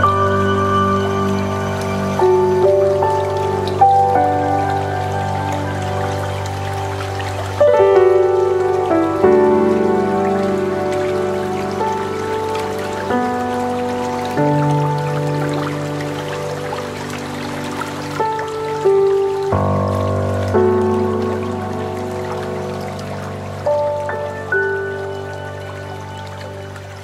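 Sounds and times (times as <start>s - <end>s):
soft sustained music chords: 0.0s - 27.0s.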